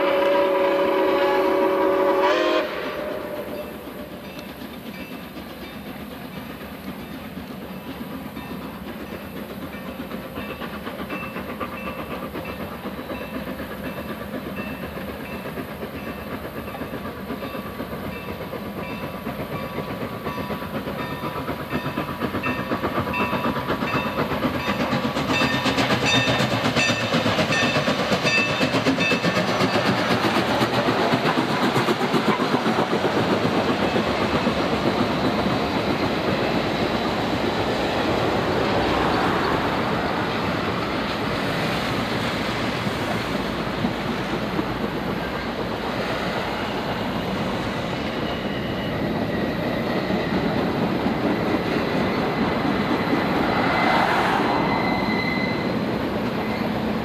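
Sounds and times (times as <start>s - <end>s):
steam whistle chord: 0.0s - 4.2s
train rumble: 0.0s - 57.0s
wheels clicking over rail joints: 3.5s - 57.0s.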